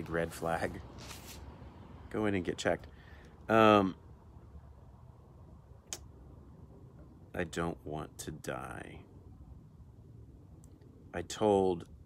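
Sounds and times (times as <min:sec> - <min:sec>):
faint low background noise: 0:00.0 - 0:12.0.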